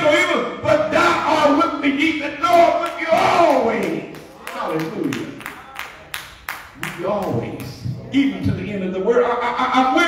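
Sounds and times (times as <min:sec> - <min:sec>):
hand clapping: 0:02.5 - 0:08.0.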